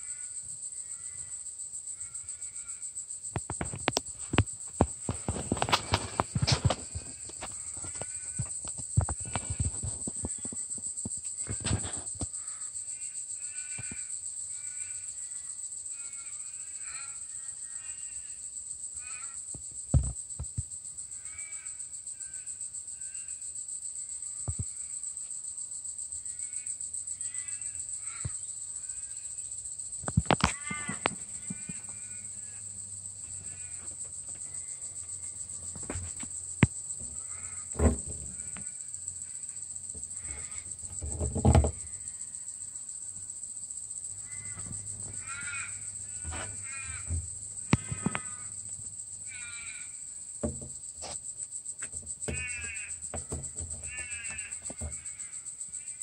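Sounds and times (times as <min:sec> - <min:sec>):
high insect drone: 0:00.0 - 0:56.0
knocks and bumps: 0:03.4 - 0:12.3, 0:19.9 - 0:20.6, 0:35.4 - 0:38.7, 0:39.9 - 0:42.0, 0:44.2 - 0:49.8, 0:50.4 - 0:51.2, 0:51.8 - 0:55.2.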